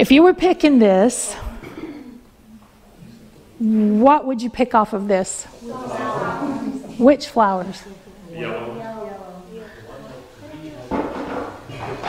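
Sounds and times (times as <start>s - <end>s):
people murmuring: 5.4s - 12.0s.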